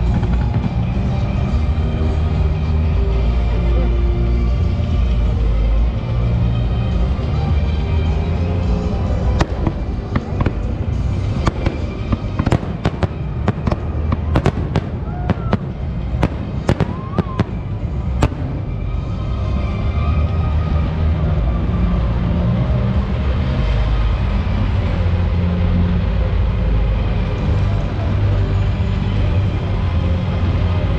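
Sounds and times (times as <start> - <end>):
fireworks bangs: 0.0 - 1.8, 9.3 - 19.2
music: 0.0 - 30.9.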